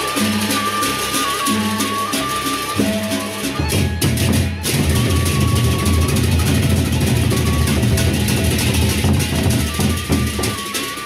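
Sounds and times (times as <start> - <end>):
drums beaten with sticks: 0.0 - 11.0
hand cymbals clashing: 0.0 - 11.0.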